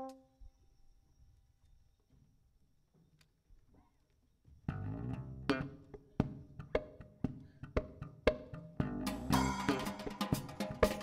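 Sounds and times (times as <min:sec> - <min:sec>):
electric bass: 0:04.7 - 0:10.1
plucked guitar: 0:04.7 - 0:11.0
percussive click on the beat: 0:05.5 - 0:09.1.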